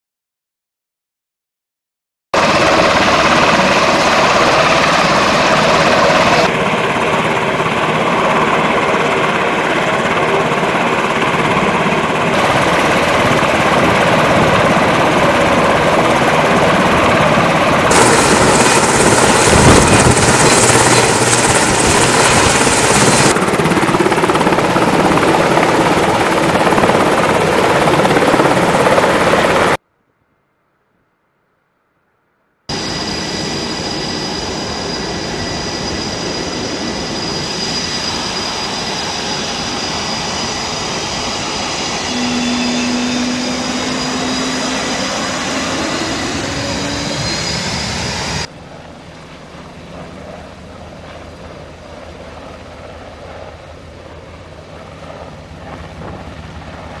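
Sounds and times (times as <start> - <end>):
helicopter turbines and rotors: 2.4 - 29.8, 32.7 - 57.0
thin high whine: 17.9 - 23.3, 32.7 - 48.5.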